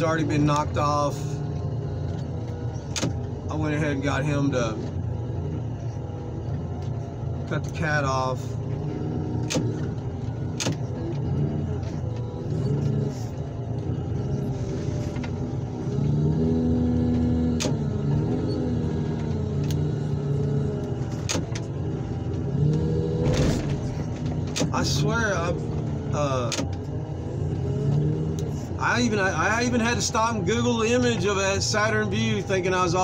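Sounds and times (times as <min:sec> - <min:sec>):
heavy equipment engine under load: 0:20.5 - 0:27.0.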